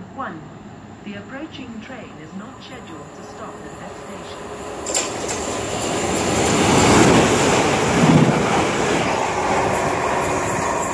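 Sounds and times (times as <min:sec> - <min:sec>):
steam train rumbling past: 0:01.5 - 0:10.9.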